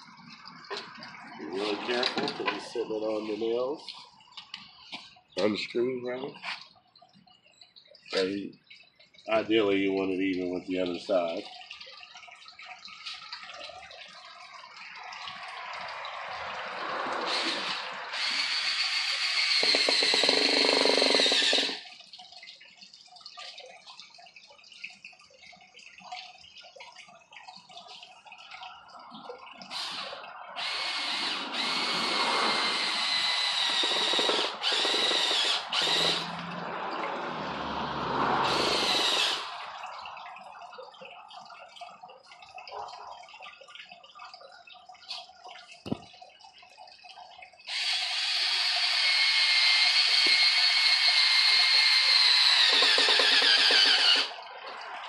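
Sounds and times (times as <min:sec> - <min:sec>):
cordless drill boring into wood: 0:17.2 - 0:21.9, 0:29.7 - 0:36.4, 0:38.4 - 0:39.6, 0:47.7 - 0:54.4.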